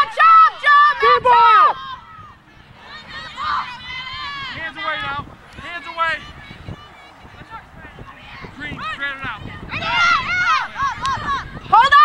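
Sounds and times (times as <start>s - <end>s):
women shouting and calling out: 0.0s - 12.0s.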